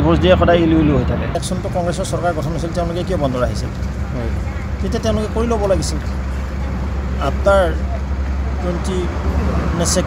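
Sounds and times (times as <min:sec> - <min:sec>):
man talking: 0:00.0 - 0:06.1, 0:07.2 - 0:07.9, 0:08.6 - 0:10.0
low rumble of road traffic: 0:00.0 - 0:10.0.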